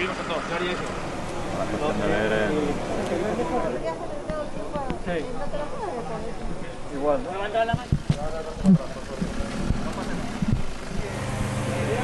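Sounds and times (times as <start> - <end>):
excavator diesel engine: 0.0 - 3.8, 8.7 - 12.0
voices: 0.0 - 12.0.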